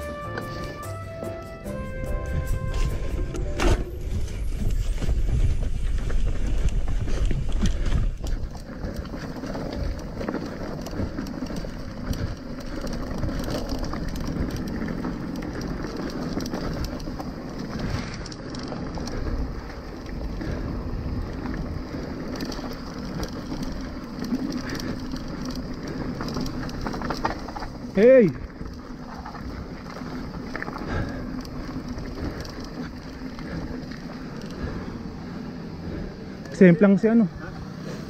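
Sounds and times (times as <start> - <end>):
bike rattling and ticking: 2.3 - 38.0
bike tyres crunching on gravel: 2.7 - 38.0.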